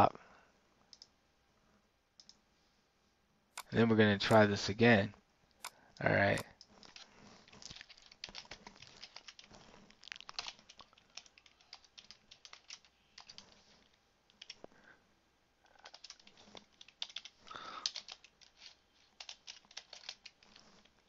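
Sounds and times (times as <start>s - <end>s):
computer keyboard typing: 6.4s - 13.7s, 14.3s - 14.6s, 15.7s - 20.6s.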